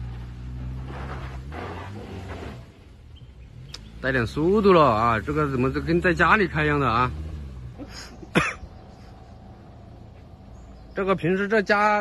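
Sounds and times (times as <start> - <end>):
car engine humming: 0.0 - 12.0
man coughing: 8.1 - 8.7.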